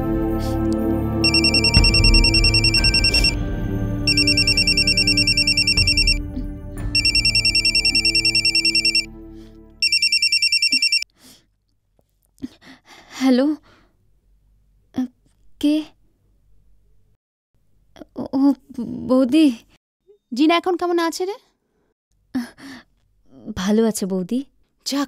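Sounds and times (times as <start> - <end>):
soft background music: 0.0 - 9.9
mobile phone ringtone: 1.2 - 3.4, 4.1 - 6.2, 6.9 - 9.1, 9.8 - 11.0.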